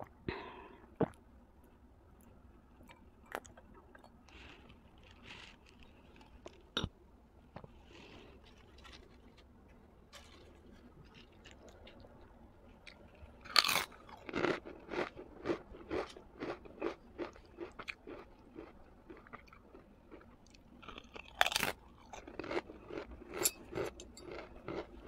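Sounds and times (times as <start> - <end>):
chewing: 10.2 - 25.0.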